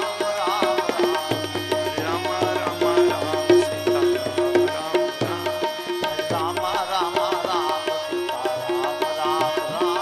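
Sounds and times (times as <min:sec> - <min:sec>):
tabla rhythm: 0:00.0 - 0:10.0.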